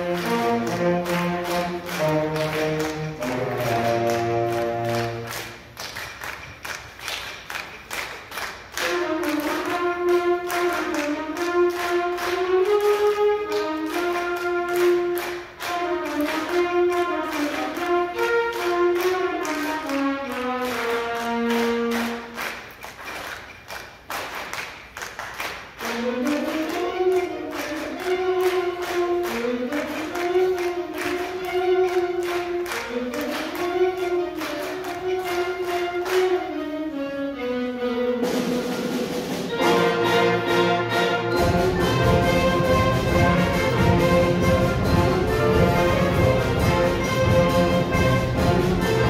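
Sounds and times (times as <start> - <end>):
concert band wind chords: 0.0 - 23.2, 25.5 - 49.0
drum and cymbal hits: 38.2 - 40.2, 41.3 - 49.0.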